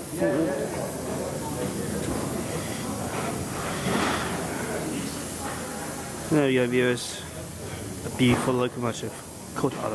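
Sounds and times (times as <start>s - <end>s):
faint voices: 0.0s - 9.9s
steam locomotive hissing: 0.0s - 9.9s.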